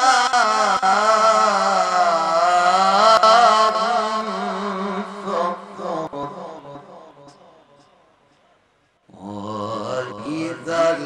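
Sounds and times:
man reciting melodically: 0:00.0 - 0:07.4, 0:09.1 - 0:11.0.

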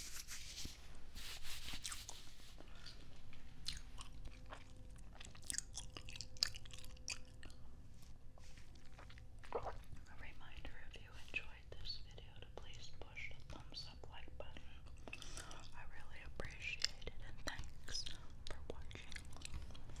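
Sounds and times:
soft whispering: 0:10.0 - 0:20.0.

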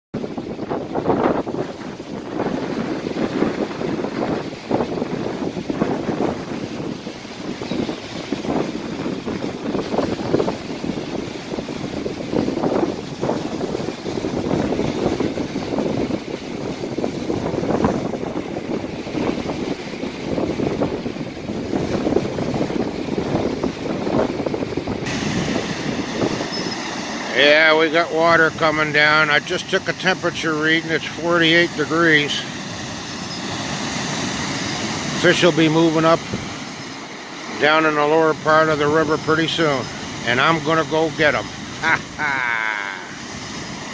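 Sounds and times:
waves breaking on shore: 0:00.1 - 0:43.9
wind gusting on microphone: 0:00.1 - 0:43.9.

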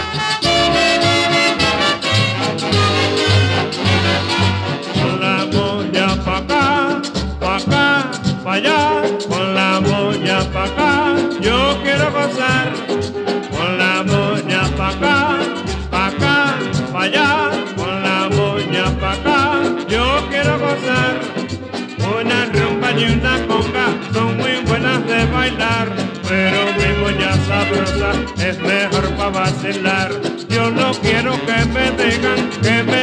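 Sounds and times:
merengue band playing: 0:00.0 - 0:33.0.

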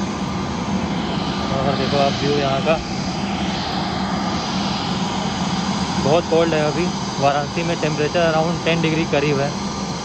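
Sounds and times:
jet airliner engine drone: 0:00.0 - 0:10.0.

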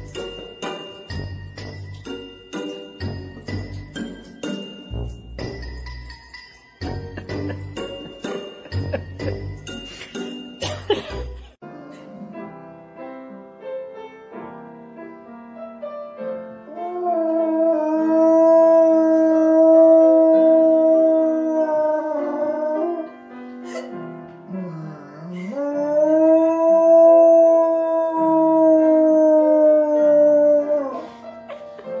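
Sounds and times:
christmas music: 0:00.0 - 0:11.7
dog howling: 0:24.6 - 0:31.1.

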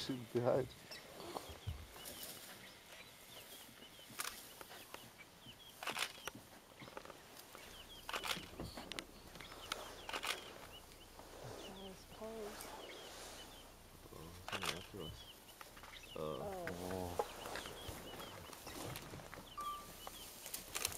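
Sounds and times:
small birds chirping: 0:00.0 - 0:20.9
sharp cracks: 0:05.8 - 0:06.4, 0:08.0 - 0:10.6.

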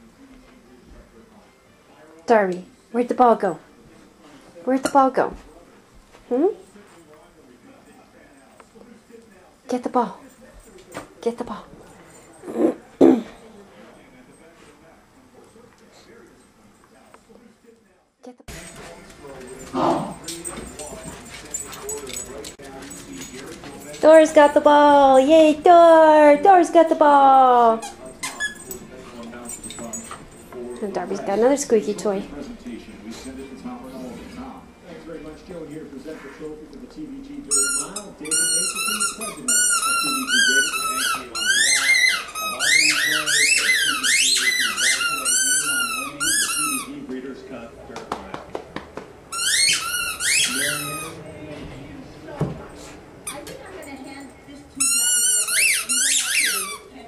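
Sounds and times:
puppy whimpering: 0:27.7 - 0:28.9
squeaky dog toy squeaking: 0:27.8 - 0:28.9, 0:37.5 - 0:46.9, 0:49.3 - 0:51.2, 0:54.8 - 0:56.9.

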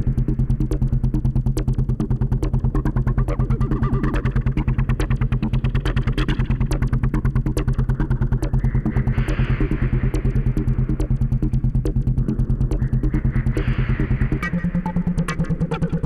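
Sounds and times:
drum machine ticks: 0:00.0 - 0:16.0
low synth bass pulse: 0:00.0 - 0:16.0.

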